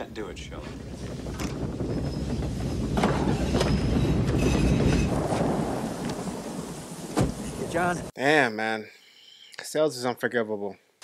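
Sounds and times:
low rumble of thunder: 0:00.0 - 0:08.1
heavy rain pouring: 0:00.8 - 0:08.1.

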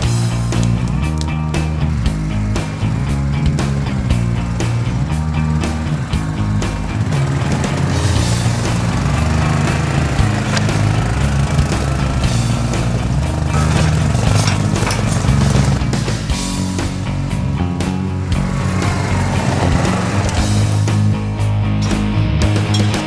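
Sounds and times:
atv engine running: 0:00.0 - 0:23.0
music with steady beat: 0:00.0 - 0:23.0.

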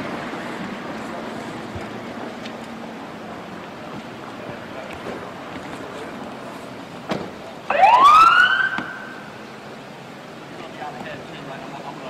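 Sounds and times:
police siren burst: 0:07.7 - 0:09.3.

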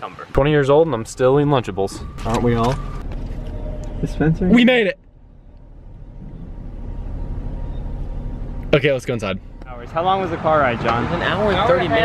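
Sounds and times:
low rumble inside car: 0:00.4 - 0:10.3.

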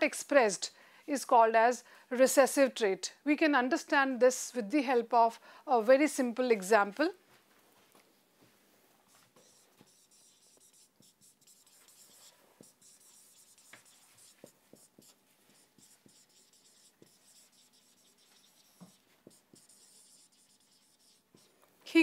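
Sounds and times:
marker writing on whiteboard: 0:09.1 - 0:21.6.

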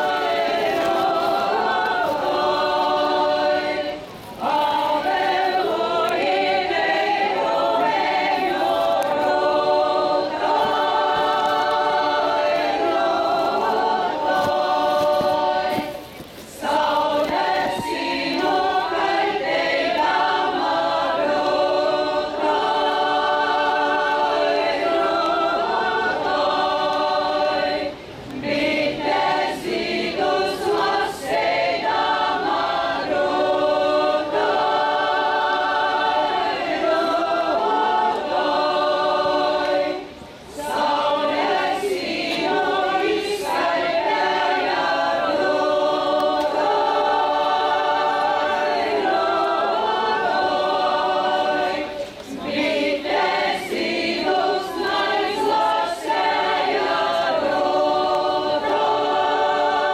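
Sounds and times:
women singing a cappella: 0:00.0 - 0:59.9.

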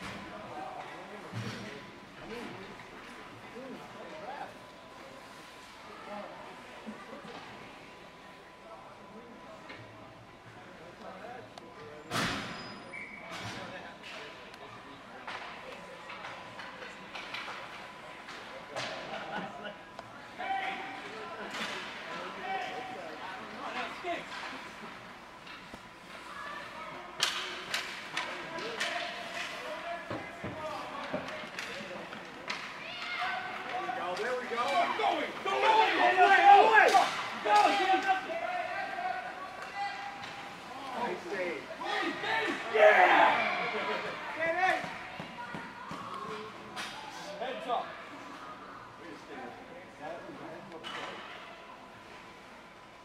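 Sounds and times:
hockey sticks and puck knocking: 0:27.2 - 0:32.8
spectators shouting: 0:34.8 - 0:40.2, 0:41.8 - 0:44.9.

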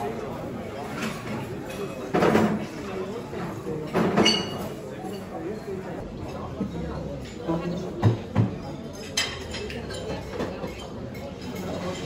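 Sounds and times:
hubbub of diners: 0:00.0 - 0:12.0.

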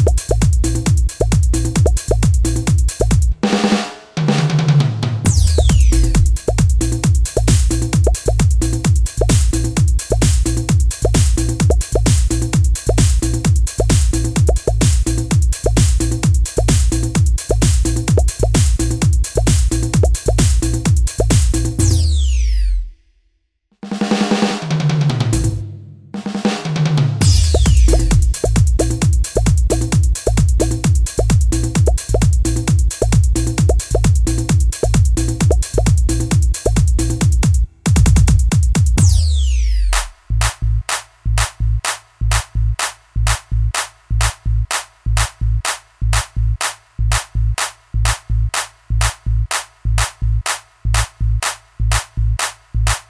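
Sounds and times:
electronic drum beat with deep kicks: 0:00.0 - 0:22.0, 0:25.1 - 0:25.6, 0:27.1 - 0:39.4, 0:40.0 - 0:53.0
bass guitar line: 0:05.3 - 0:08.4, 0:27.2 - 0:29.0
low bass note: 0:27.2 - 0:28.4.

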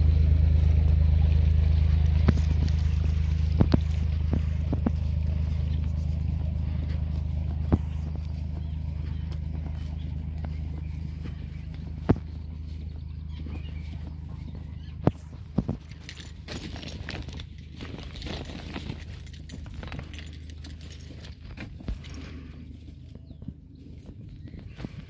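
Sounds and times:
boat engine hum: 0:00.0 - 0:25.0
footsteps on grass: 0:00.0 - 0:25.0.

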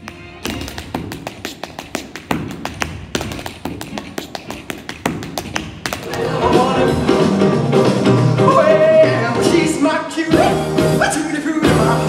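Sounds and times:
tap shoes on stage floor: 0:00.0 - 0:07.1
music: 0:00.0 - 0:12.0.

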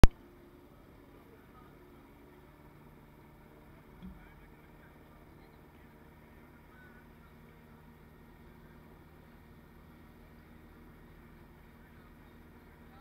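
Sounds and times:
faint low outdoor hum: 0:00.0 - 0:13.0.

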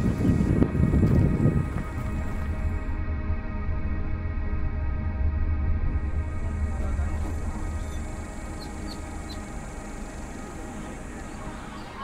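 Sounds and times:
ambient music with held tones: 0:00.0 - 0:12.0.

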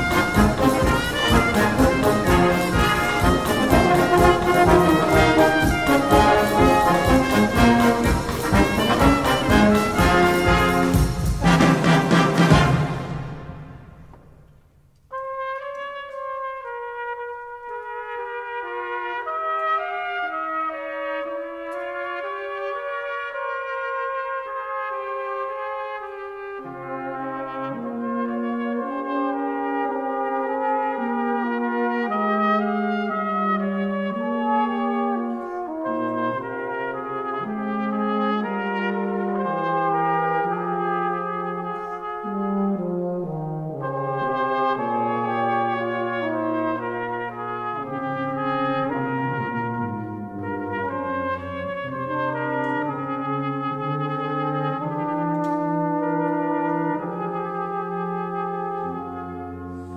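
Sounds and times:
brass band playing: 0:00.0 - 0:59.9.

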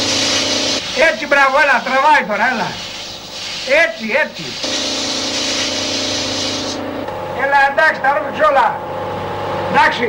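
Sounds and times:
drain cleaning machine motor hum: 0:00.0 - 0:10.0
hiss: 0:02.7 - 0:06.8.

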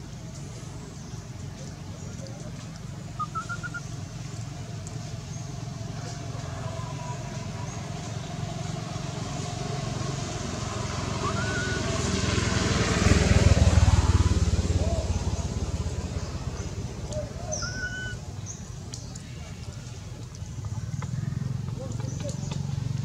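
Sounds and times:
passing vehicle engine rumble: 0:00.0 - 0:23.0.

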